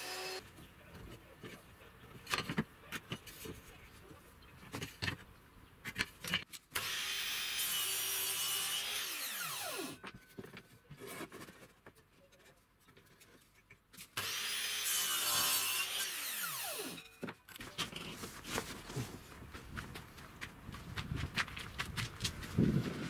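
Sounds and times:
mitre saw cutting wood: 0:00.0 - 0:00.4, 0:06.8 - 0:10.0, 0:14.2 - 0:17.0
clicks and knocks handling wood: 0:00.6 - 0:06.6.

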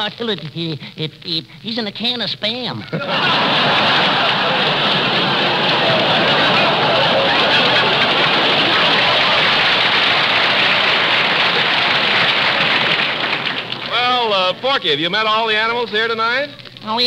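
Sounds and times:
audience laughing: 0:02.8 - 0:14.8
audience applauding: 0:03.0 - 0:15.9.

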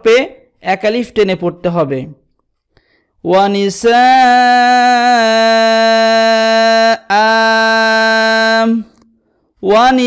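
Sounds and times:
man reciting with long vowel: 0:03.2 - 0:10.0.

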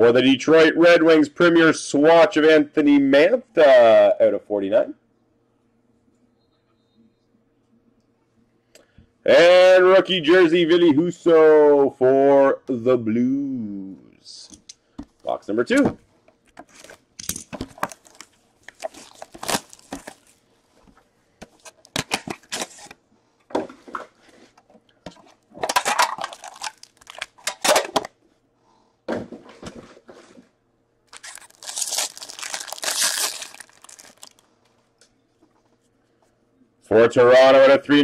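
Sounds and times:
wrapper ripping and crinkling: 0:17.7 - 0:20.4, 0:25.6 - 0:27.8, 0:31.1 - 0:34.5
card box tearing open: 0:18.8 - 0:20.2, 0:31.1 - 0:34.3.

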